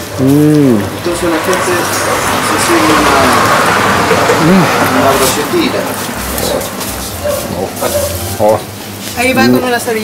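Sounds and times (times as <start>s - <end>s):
man making appreciative sounds: 0.2s - 0.9s.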